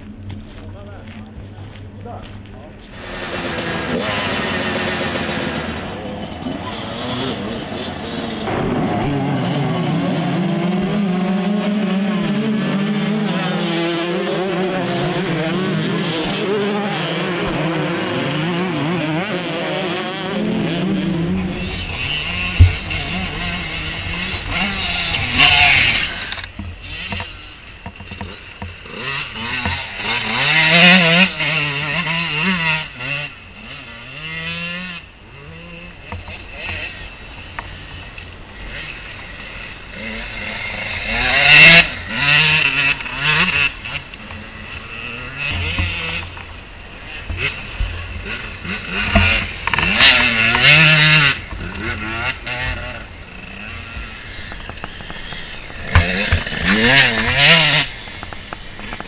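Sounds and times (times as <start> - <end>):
dirt bikes revving past: 2.8 - 59.0.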